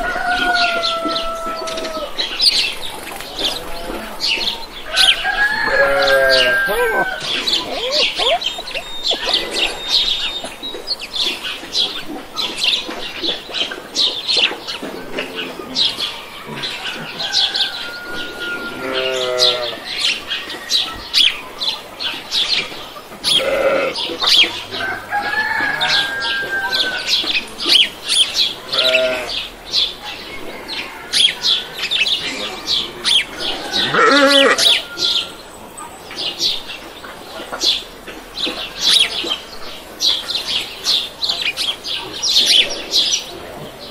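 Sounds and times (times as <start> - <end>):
poultry calling: 0.0 - 11.5, 15.1 - 21.5, 23.2 - 35.5
small birds chirping: 0.6 - 17.8, 18.8 - 43.9.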